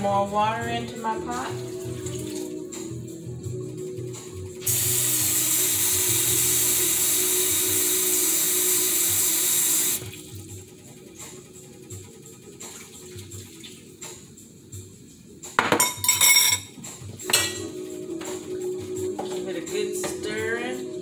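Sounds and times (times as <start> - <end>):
kitchen tap running: 4.6 - 10.2.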